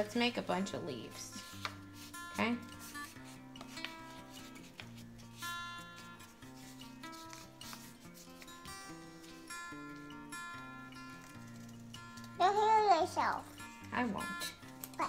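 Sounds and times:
slow background music: 0.0 - 15.0
paper rustling: 1.4 - 10.2, 11.0 - 12.4.

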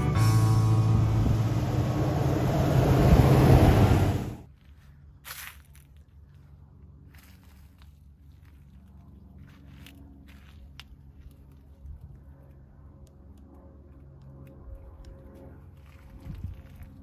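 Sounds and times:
pickup truck driving past: 0.0 - 4.4.

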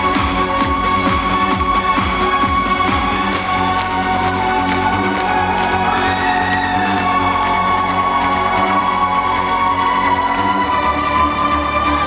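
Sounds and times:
live electronic band music: 0.0 - 12.0.

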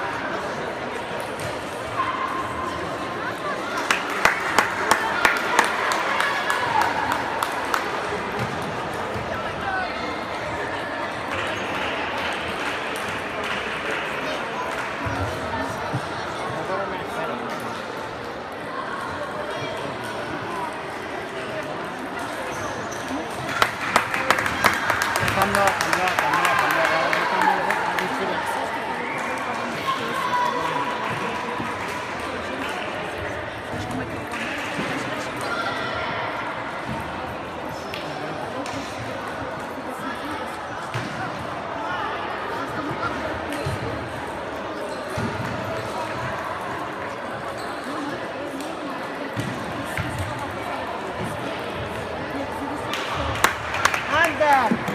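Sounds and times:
murmur of voices echoing: 0.0 - 54.9.

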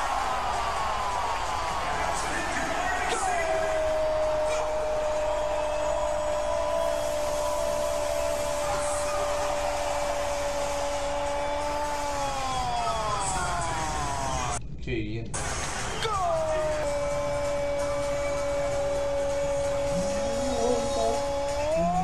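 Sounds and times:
stadium crowd noise: 0.0 - 14.6, 15.4 - 22.0
man's long held shout: 2.7 - 14.6, 16.0 - 22.0.

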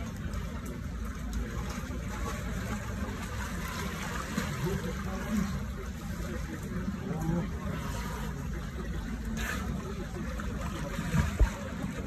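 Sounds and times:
water sloshing in a pool: 0.0 - 12.0.

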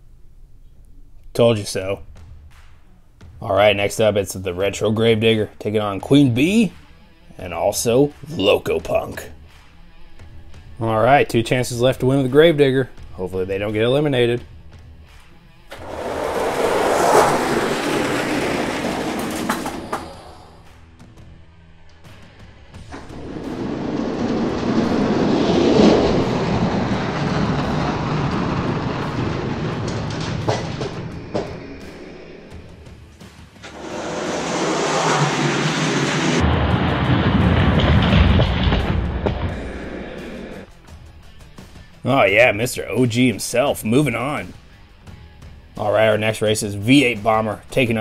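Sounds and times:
background music: 0.1 - 16.5, 40.2 - 48.0
toy trucks rolling on plastic track: 15.7 - 20.3.

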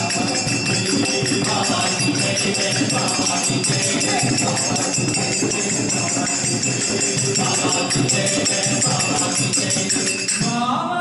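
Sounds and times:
jingling percussion: 0.0 - 10.8
group singing a devotional song: 0.0 - 11.0.

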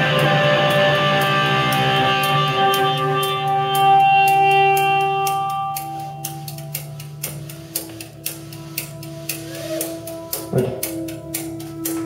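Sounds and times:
drums: 0.0 - 4.9, 6.4 - 12.0
bass guitar: 0.0 - 6.2, 9.5 - 12.0
electric guitar sustained notes: 0.0 - 7.2, 9.0 - 12.0.

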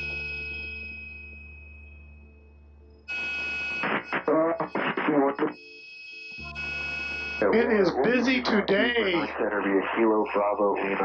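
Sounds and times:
radio static hiss: 3.8 - 5.6, 7.4 - 11.0
radio voice: 4.3 - 5.6, 7.4 - 11.0.

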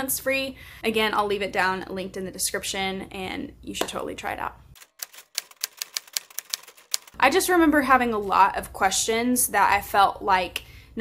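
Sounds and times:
typewriter key clacks: 4.8 - 7.2.

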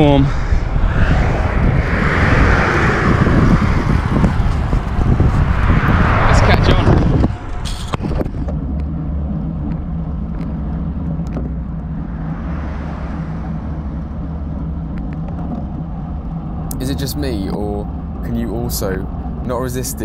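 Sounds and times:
low rumble of road and wind: 0.0 - 20.0
pickup truck passing close by: 11.9 - 16.8.

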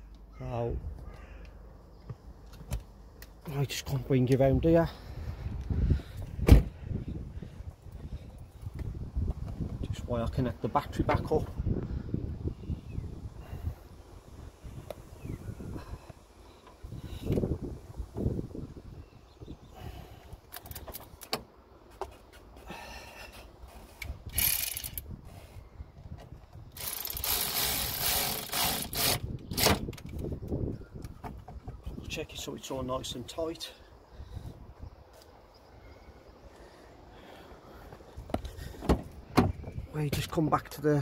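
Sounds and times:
metallic clicks and scrapes: 23.7 - 25.5, 26.7 - 30.2
tool ratcheting and rattling: 24.0 - 25.1, 26.7 - 30.2.

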